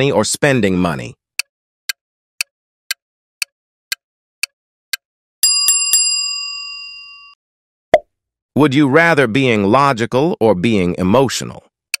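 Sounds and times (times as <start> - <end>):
clock-like ticks: 1.9 - 5.0
bell ringing: 5.4 - 7.4.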